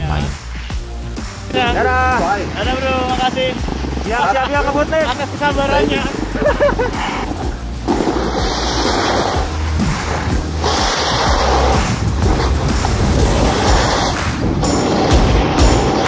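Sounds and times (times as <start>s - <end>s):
wind rushing over microphone: 0.9s - 16.0s
snowboard riding on snow: 1.4s - 16.0s.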